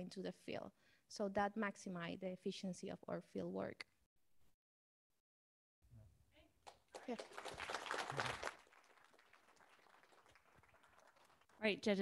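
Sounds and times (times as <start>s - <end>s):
small audience applauding: 6.6s - 11.7s.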